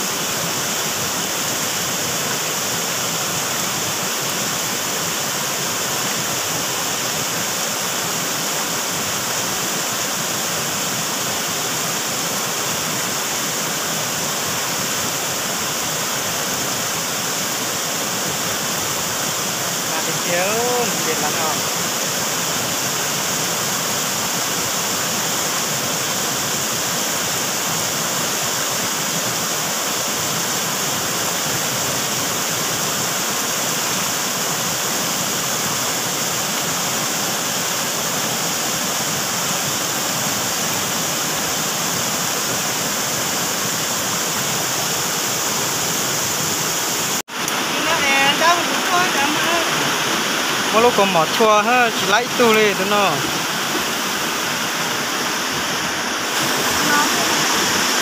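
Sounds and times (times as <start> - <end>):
shallow stream rushing: 0.0 - 58.0.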